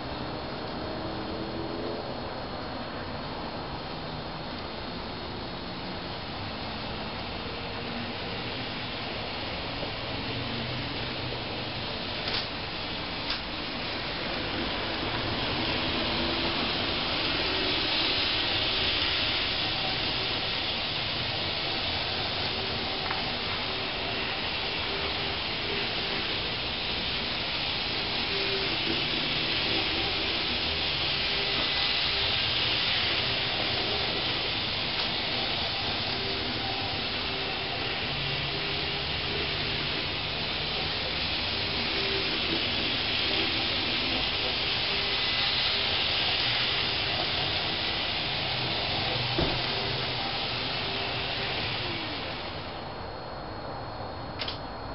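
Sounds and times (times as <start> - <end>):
model train wheels rolling on rails: 0.0 - 53.7, 54.4 - 54.6
faint motor hum: 0.0 - 54.9.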